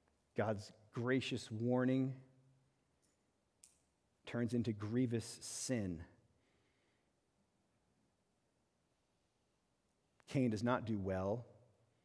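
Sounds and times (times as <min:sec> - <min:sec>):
man's voice: 0:00.4 - 0:02.3, 0:04.2 - 0:06.2, 0:10.2 - 0:11.6.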